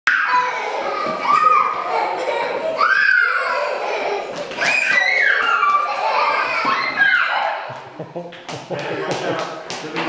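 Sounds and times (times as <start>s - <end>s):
children calling out: 0.1s - 7.9s.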